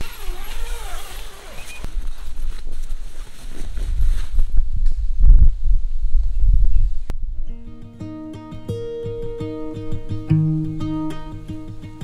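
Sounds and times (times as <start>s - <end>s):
footsteps on tent floor: 0.0s - 5.0s
wind rumbling on microphone: 1.7s - 7.6s.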